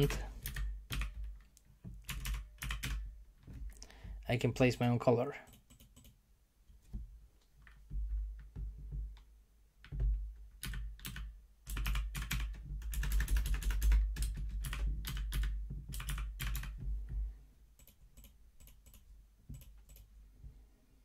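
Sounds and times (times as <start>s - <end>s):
typing on computer keyboard: 0.0s - 3.1s, 5.5s - 6.2s, 9.8s - 16.8s, 17.8s - 20.1s.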